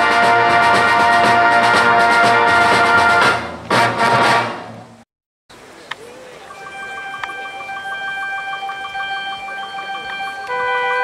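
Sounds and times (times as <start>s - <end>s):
brass band playing held chord: 0.0s - 5.0s, 6.5s - 11.0s
rapidly repeated note: 6.5s - 11.0s.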